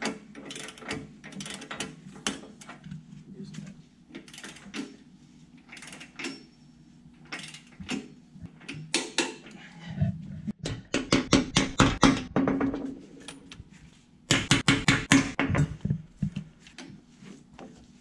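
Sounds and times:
hammer striking steel bolts: 10.6 - 12.9, 14.3 - 15.7.

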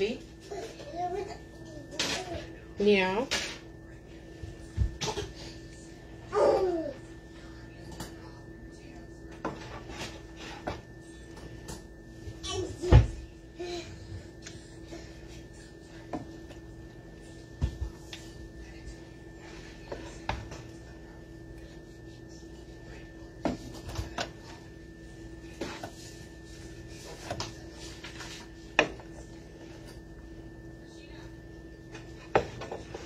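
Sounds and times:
faint hum: 0.0 - 33.0.

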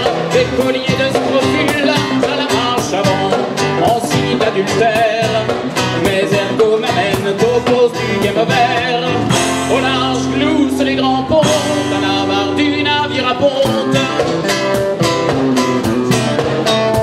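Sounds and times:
electric guitars playing: 0.0 - 17.0
steady drum beat: 0.0 - 17.0.

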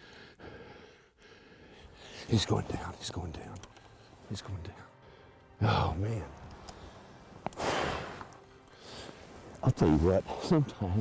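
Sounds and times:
faint breathing: 0.0 - 2.4, 6.7 - 9.4.

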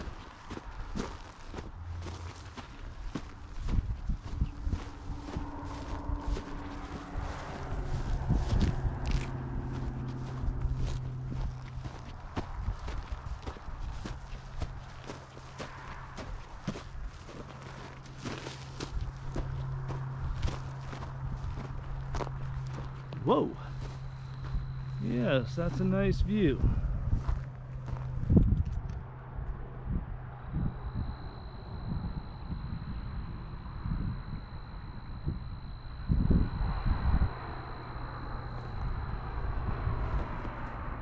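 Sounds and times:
footsteps crunching on dry grass: 0.0 - 28.8
steady low hum: 0.0 - 41.0.

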